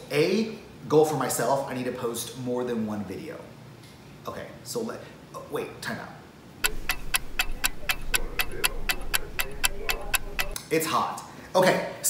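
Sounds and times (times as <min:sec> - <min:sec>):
clock ticking: 0:06.6 - 0:10.6.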